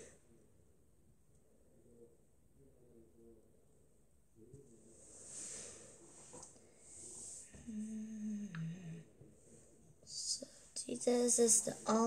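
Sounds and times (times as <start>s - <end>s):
girl humming: 7.7s - 9.0s.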